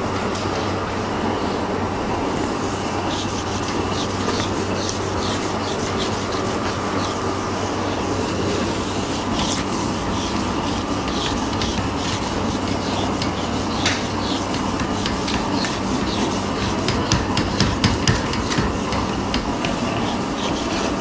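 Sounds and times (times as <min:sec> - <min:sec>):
eraser rubbing on whiteboard: 0:03.0 - 0:21.0.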